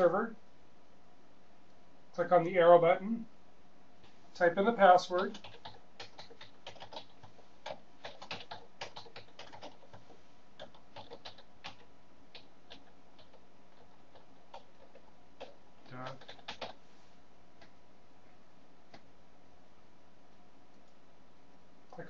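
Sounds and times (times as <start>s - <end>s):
keyboard typing: 5.1s - 16.8s.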